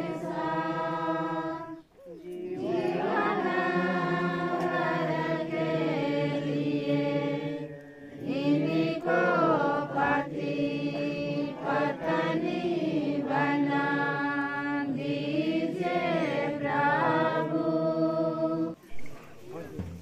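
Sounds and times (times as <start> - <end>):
group singing a slow hymn: 0.0 - 18.8.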